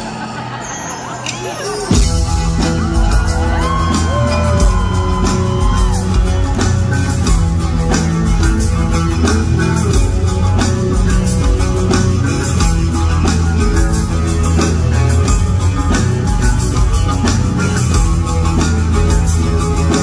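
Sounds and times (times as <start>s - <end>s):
live rock band instrumental: 0.0s - 20.0s.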